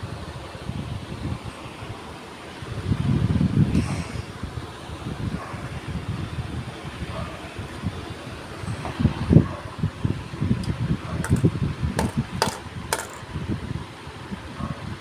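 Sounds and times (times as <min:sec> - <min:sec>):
fan airflow buffeting microphone: 0:00.0 - 0:15.0.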